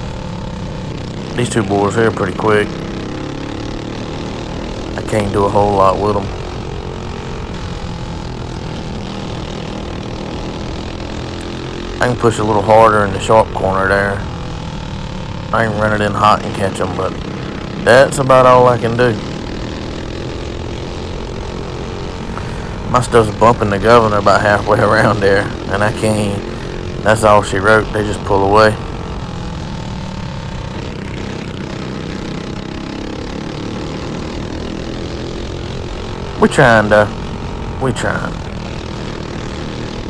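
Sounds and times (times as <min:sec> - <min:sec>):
kart engine running: 0:00.0 - 0:40.0
track noise: 0:00.0 - 0:40.0.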